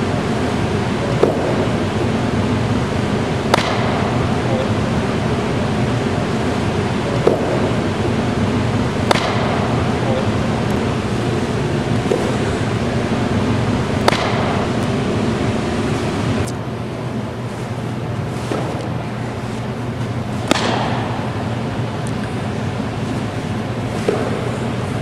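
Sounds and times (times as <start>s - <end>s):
low hum: 0.0s - 25.0s
steady rushing noise: 0.0s - 25.0s
softball smacking into mitt: 20.4s - 21.0s.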